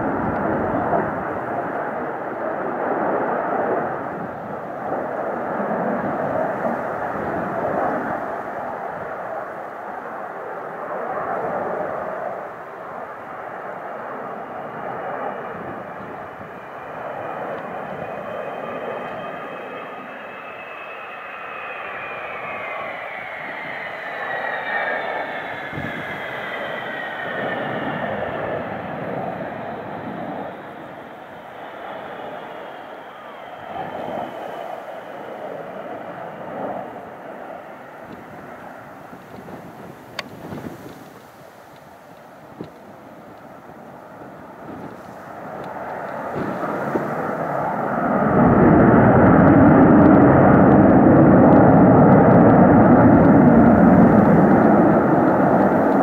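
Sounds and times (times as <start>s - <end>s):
jet engines roaring: 0.0s - 56.0s
high whine sliding down in pitch: 17.2s - 37.0s.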